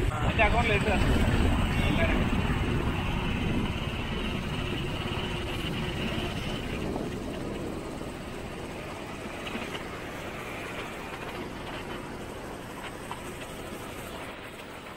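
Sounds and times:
car road and engine rumble: 0:00.0 - 0:14.9.

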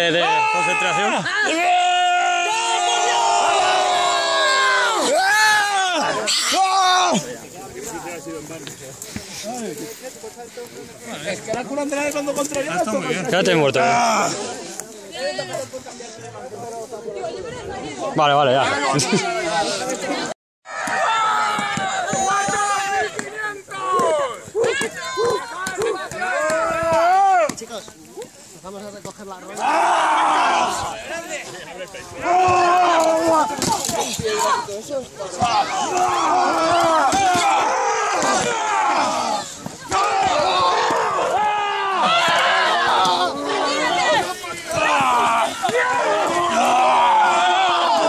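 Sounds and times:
people yelling and whooping: 0:00.0 - 0:08.2, 0:18.6 - 0:27.6, 0:29.5 - 0:48.0.

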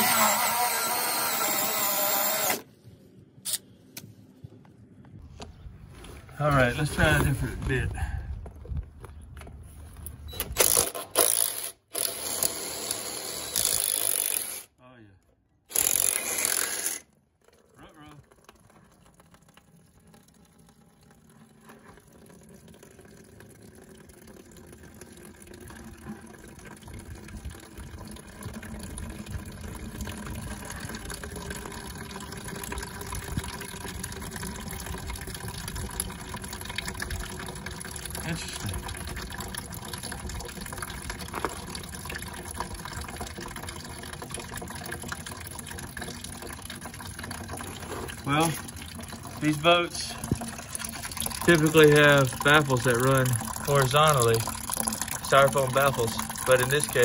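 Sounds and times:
water splashing into plastic bucket: 0:17.4 - 0:57.0.

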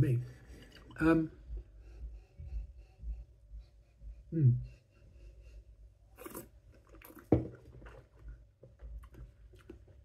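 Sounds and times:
sipping from a glass: 0:06.1 - 0:08.0.

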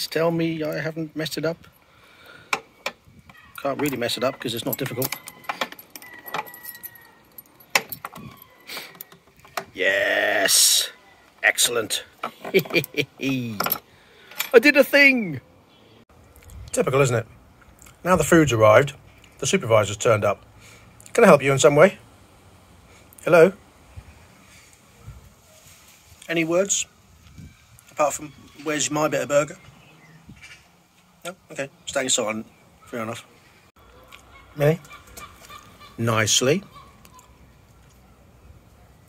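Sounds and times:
keys jangling: 0:04.6 - 0:09.1.

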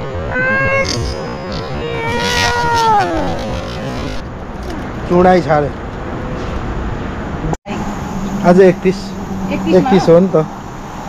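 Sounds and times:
child's drawn-out vocal sound: 0:01.8 - 0:03.7.

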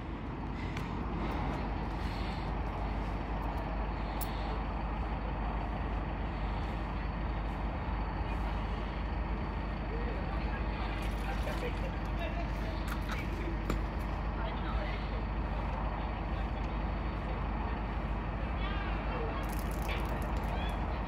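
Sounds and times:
large vehicle engine idling: 0:00.0 - 0:21.0.

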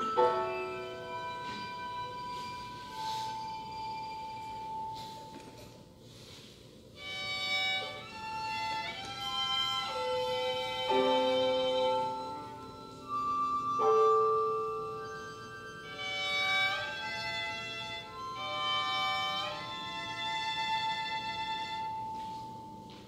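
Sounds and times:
cello: 0:07.0 - 0:22.2
violin: 0:07.0 - 0:22.2.

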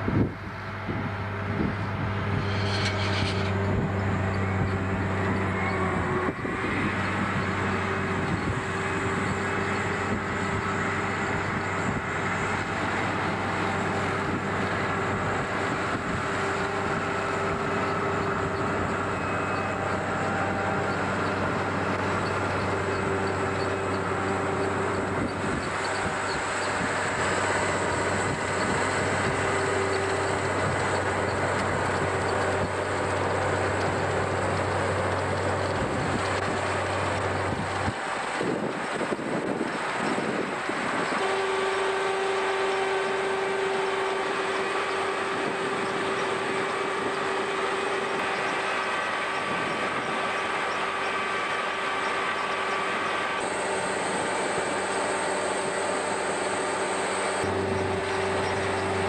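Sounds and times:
harvester machine drone: 0:00.0 - 0:59.0.

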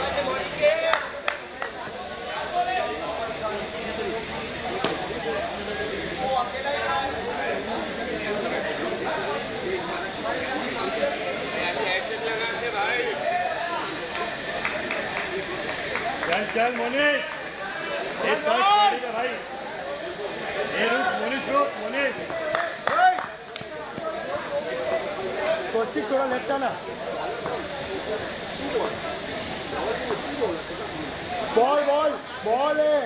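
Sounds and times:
background hiss: 0:00.0 - 0:33.0
voices talking and calling: 0:00.0 - 0:33.0
people shouting: 0:17.6 - 0:19.3.

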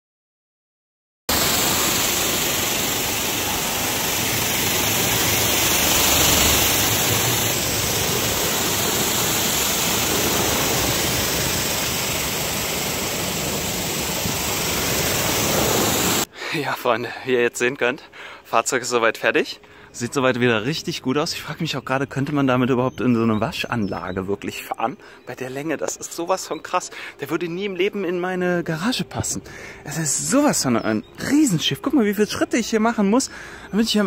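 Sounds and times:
pressure washer spraying water: 0:01.3 - 0:16.3.

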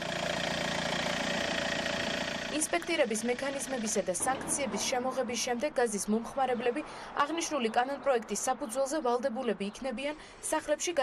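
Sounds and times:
van engine idling: 0:00.0 - 0:04.3.

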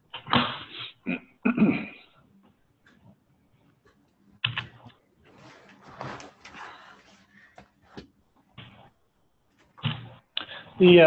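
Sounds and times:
man clearing his throat: 0:00.4 - 0:02.0.

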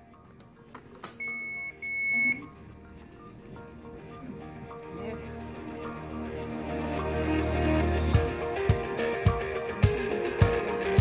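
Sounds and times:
background music: 0:00.0 - 0:11.0
infusion pump beeping: 0:01.2 - 0:05.2.

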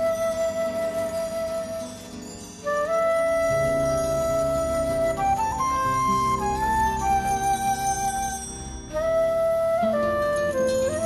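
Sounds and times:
flute melody: 0:00.0 - 0:11.0
jazz bossa band: 0:02.7 - 0:07.9.

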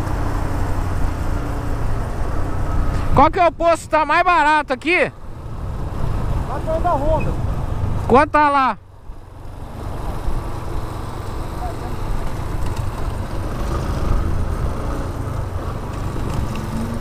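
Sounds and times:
motorcycle engine: 0:00.0 - 0:03.3, 0:05.1 - 0:08.2, 0:08.8 - 0:17.0
wind and road noise: 0:00.0 - 0:17.0.

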